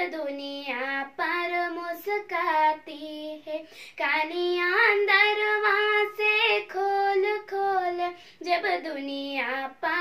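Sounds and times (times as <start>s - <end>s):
girl singing unaccompanied: 0.0s - 10.0s.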